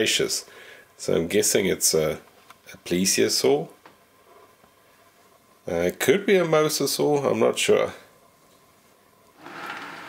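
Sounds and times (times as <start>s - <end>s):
rock block scraping on table: 9.4s - 10.0s.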